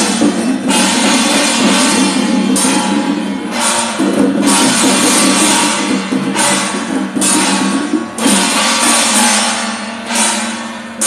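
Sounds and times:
long cymbal crashes: 0.0 - 11.0
steady drumming: 0.0 - 11.0.

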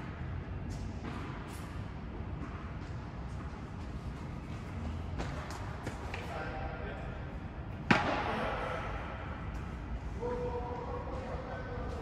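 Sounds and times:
racket striking ball: 7.8 - 8.4.

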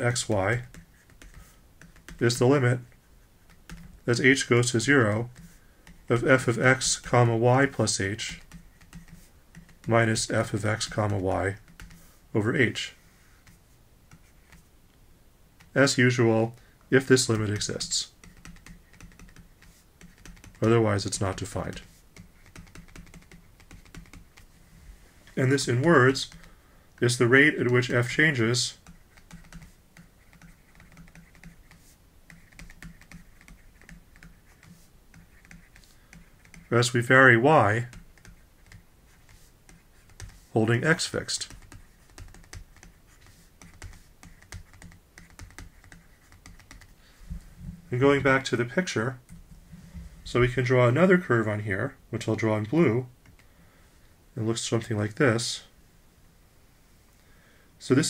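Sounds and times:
stylus tapping on tablet: 0.6 - 2.2, 3.5 - 4.0, 8.3 - 9.9, 18.2 - 20.7, 21.7 - 24.5, 28.9 - 36.7, 41.5 - 47.4.

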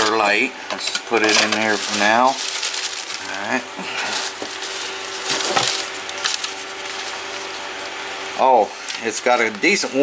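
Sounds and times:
plastic bags and bubble wrap rustling: 0.0 - 10.0.

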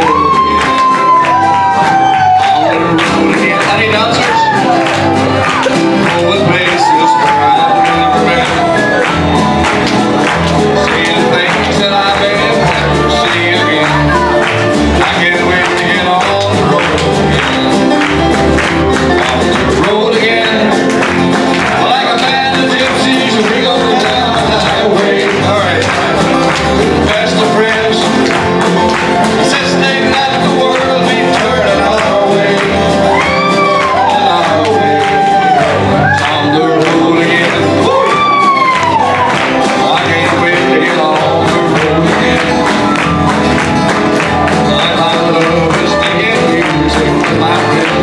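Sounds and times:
voices singing along: 0.0 - 43.3, 44.2 - 48.0
acoustic folk band playing: 0.0 - 48.0.

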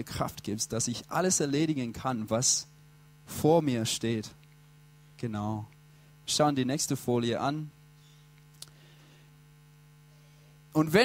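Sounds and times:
faint electrical mains hum: 0.0 - 11.0.

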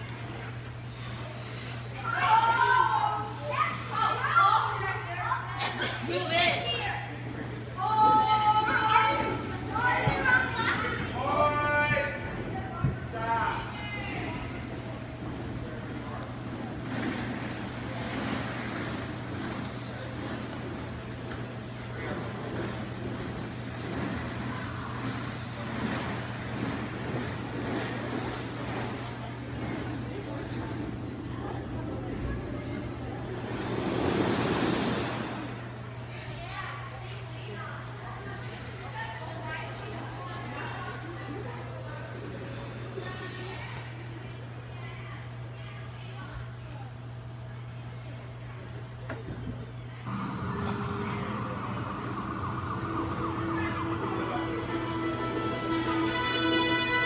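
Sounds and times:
young people talking and calling out: 1.9 - 15.1, 50.0 - 57.0
steady low hum: 45.4 - 57.0.

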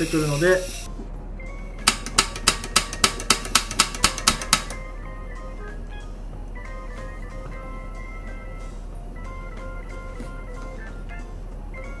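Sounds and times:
piezo igniter clicking: 1.8 - 4.8.

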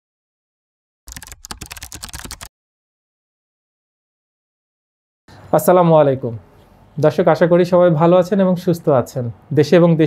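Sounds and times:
keyboard typing clicks: 1.1 - 2.5.

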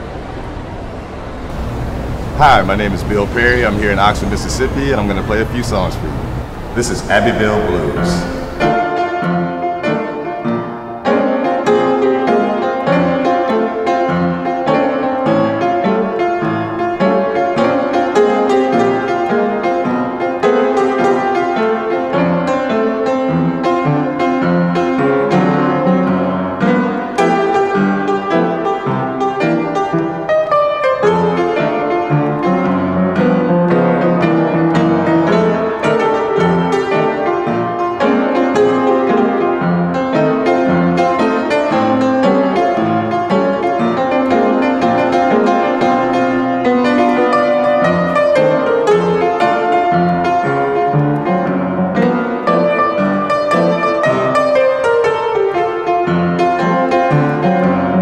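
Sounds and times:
blues piano: 0.0 - 58.0.

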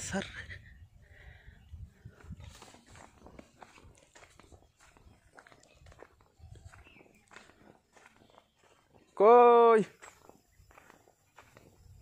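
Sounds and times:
footsteps on dry soil: 1.6 - 12.0.

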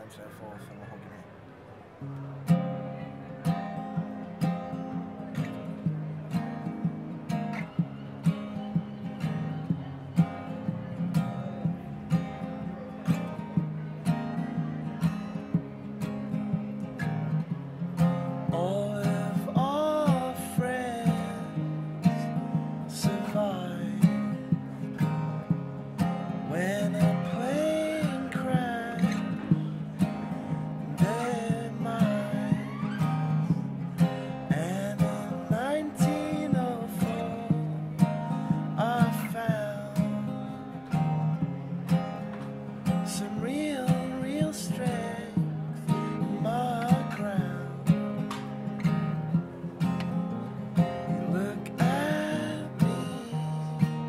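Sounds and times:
acoustic guitar strumming: 2.0 - 54.0
man singing: 18.5 - 25.3, 26.3 - 41.0, 42.9 - 48.2, 51.0 - 54.0.

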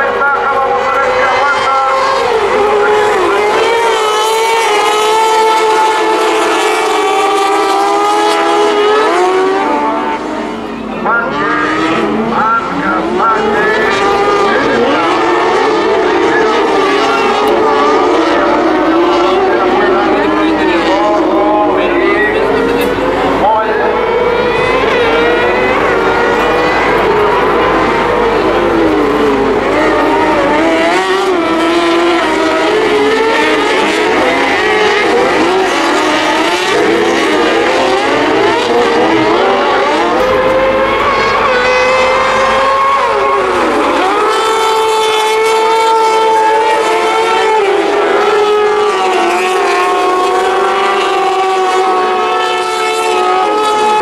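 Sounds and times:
racing buggy engines revving: 0.0 - 54.0.

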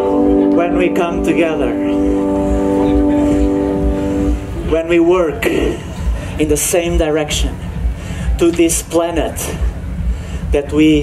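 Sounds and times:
held drone note: 0.0 - 6.4
man speaking: 0.5 - 2.2, 4.6 - 7.6.

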